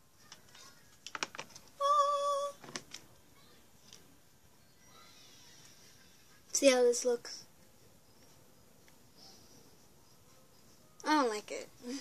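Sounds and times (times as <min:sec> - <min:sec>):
clicks and taps of plastic object: 0:00.3 - 0:01.7.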